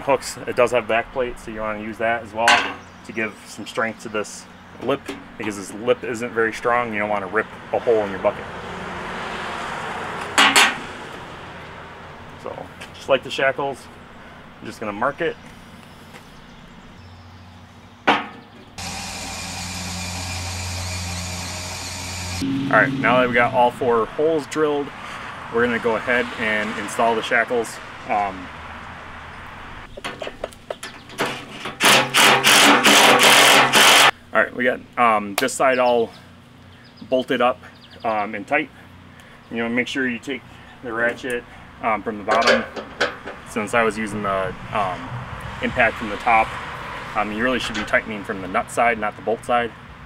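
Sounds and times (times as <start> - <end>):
vehicle passing: 7.3 - 13.0, 19.4 - 29.9, 43.4 - 48.2
tool handling clicks and knocks: 30.0 - 33.1, 42.3 - 43.5
impact driver hammering bolts: 31.8 - 34.1.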